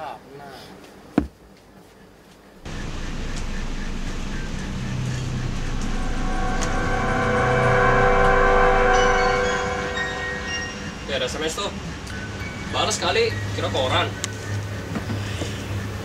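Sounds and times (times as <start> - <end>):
eerie horror drone: 2.6 - 14.9.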